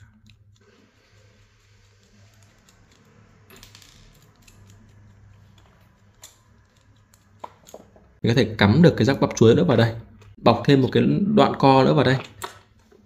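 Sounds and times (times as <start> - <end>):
small screwdriver clicking and scraping: 0.0 - 7.9.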